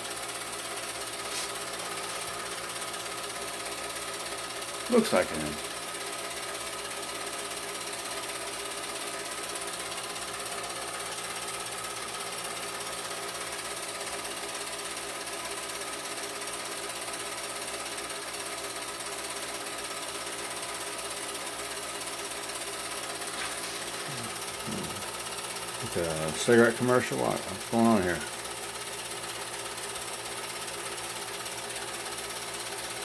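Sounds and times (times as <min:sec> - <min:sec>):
film projector chatter and whir: 0:00.0 - 0:33.0.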